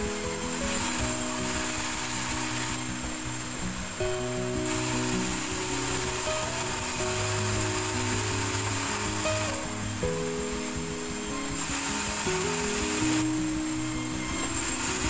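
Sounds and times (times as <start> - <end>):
background music with melody: 0.0 - 15.0.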